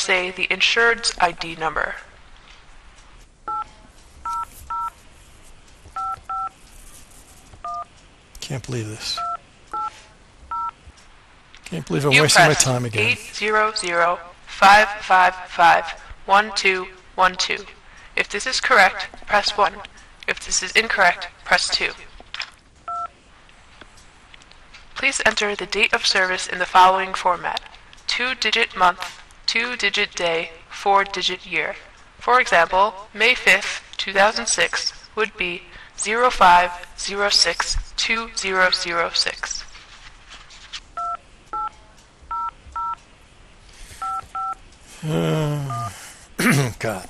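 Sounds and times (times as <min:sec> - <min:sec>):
telephone keypad touch tones: 0:03.5 - 0:04.9, 0:06.0 - 0:06.5, 0:09.2 - 0:09.9, 0:10.5 - 0:10.7, 0:41.0 - 0:41.7, 0:42.3 - 0:43.0, 0:44.0 - 0:44.6.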